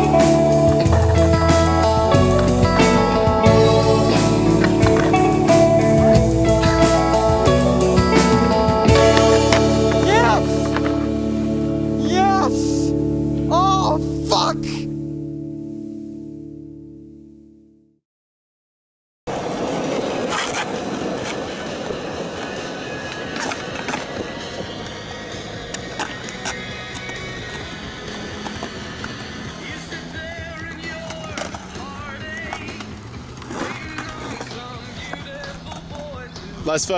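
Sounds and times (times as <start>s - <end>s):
skateboard wheels rolling on concrete: 0.0s - 13.1s, 19.3s - 36.9s
skateboard clacking on ground: 4.6s - 6.1s, 8.9s - 11.1s, 19.3s - 36.4s.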